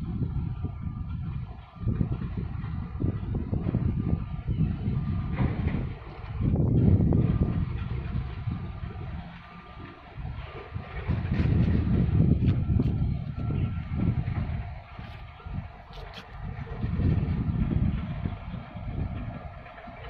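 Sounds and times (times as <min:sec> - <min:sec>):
faint steady hums: 0:00.0 - 0:20.0
ship passing low rumble: 0:00.0 - 0:20.0
wind on microphone: 0:00.0 - 0:20.0.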